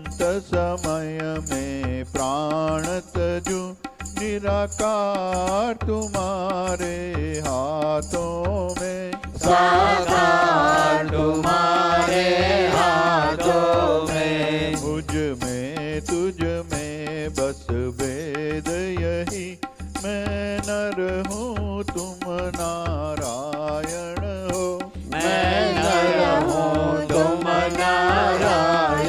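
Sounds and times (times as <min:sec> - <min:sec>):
person singing ornamented melody: 0:25.1 - 0:29.0.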